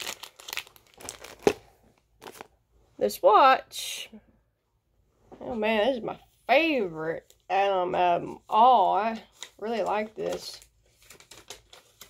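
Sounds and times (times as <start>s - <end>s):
packaging crinkling and rustling: 0.0s - 2.6s, 9.3s - 12.0s.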